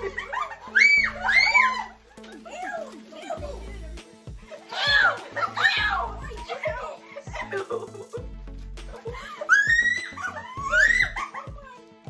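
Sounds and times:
girls shrieking and laughing: 0.0 - 8.2, 8.9 - 11.9
background music: 0.0 - 12.0.

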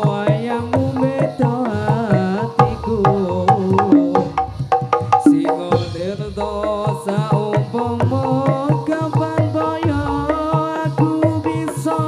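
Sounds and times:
sharp percussion strikes: 0.0 - 12.0
wavering melody: 0.0 - 12.0.

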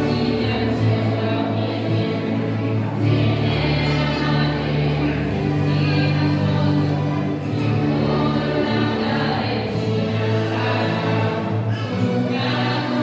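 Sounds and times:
choir singing long held notes: 0.0 - 13.0.

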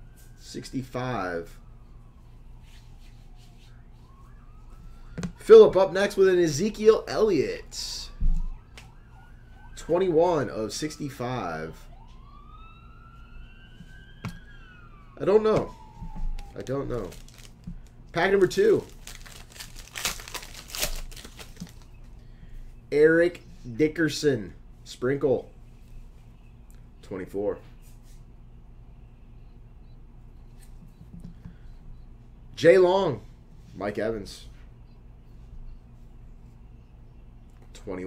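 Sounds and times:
low electrical hum: 0.0 - 38.0
trading cards rustling: 15.6 - 22.0
foil wrapper crinkling and tearing: 16.5 - 22.0.

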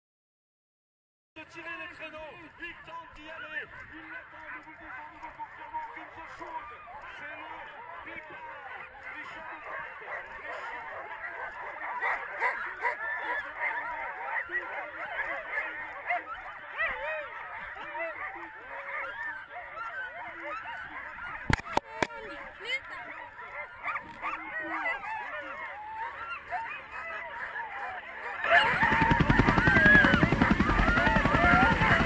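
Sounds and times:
sled dogs yelping and howling: 2.0 - 32.0.

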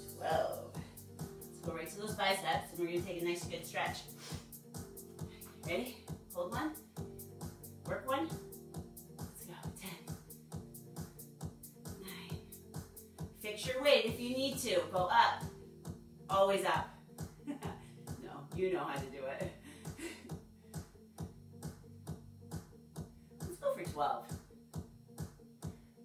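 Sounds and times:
fast-beat workout music: 0.0 - 26.0.

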